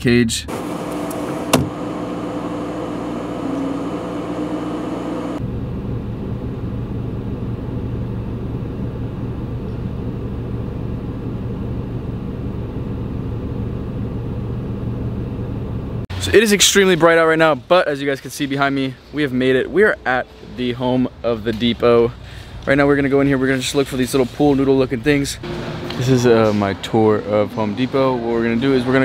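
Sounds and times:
car engine idling hum: 0:00.5 - 0:16.4.

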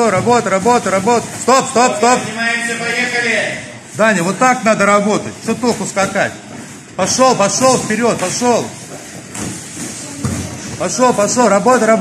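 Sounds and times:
feet shuffling on mats: 0:05.4 - 0:11.4.

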